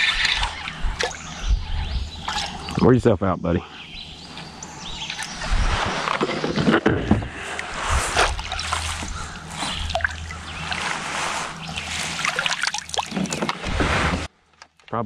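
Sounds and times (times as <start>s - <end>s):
fish thrashing in water: 2.2s - 2.8s, 7.4s - 14.2s
water sloshing in landing net: 8.0s - 14.3s.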